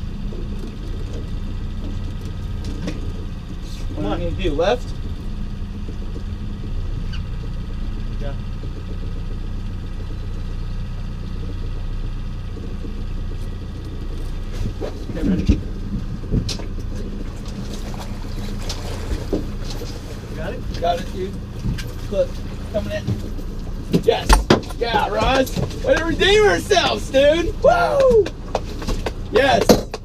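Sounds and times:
outboard motor humming: 0.0s - 30.0s.

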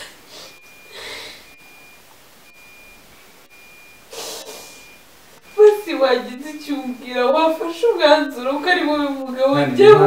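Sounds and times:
sharp noisy breath: 0.0s - 1.6s, 4.1s - 5.0s
woman sobbing: 5.6s - 10.0s.

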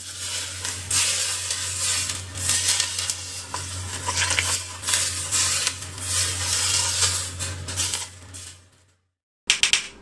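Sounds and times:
hot oil sizzling: 0.0s - 8.8s.

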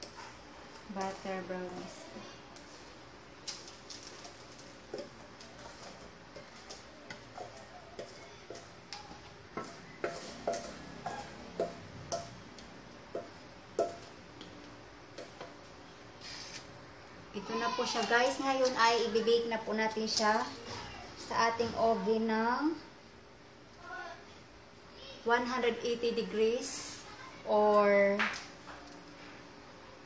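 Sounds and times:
spatula tapping metal bowl: 6.6s - 14.5s.

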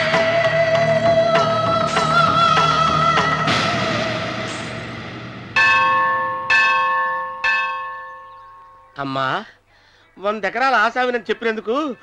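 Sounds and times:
temple bell ringing: 5.6s - 9.0s.

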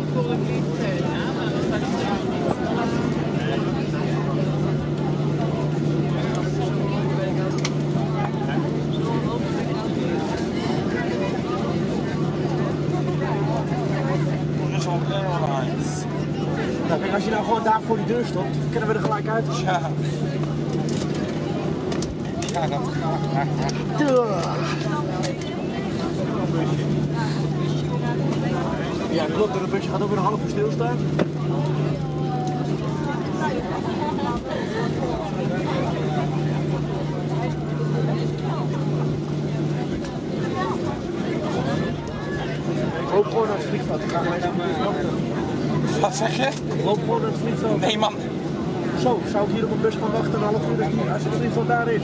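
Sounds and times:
aircraft engine drone in cabin: 0.0s - 52.0s
passengers chattering faintly: 0.0s - 52.0s.

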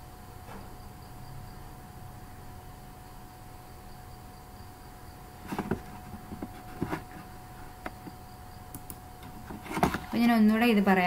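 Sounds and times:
faint background hum: 0.0s - 11.0s.

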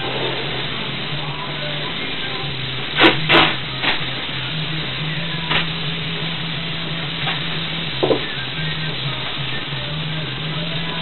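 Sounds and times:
low hum: 0.0s - 11.0s
steady hiss: 0.0s - 11.0s.

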